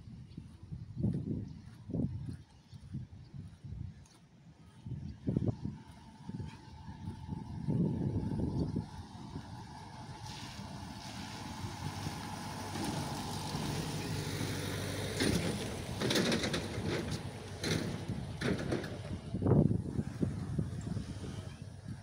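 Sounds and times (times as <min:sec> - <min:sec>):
road train engine humming: 0:04.5 - 0:22.0.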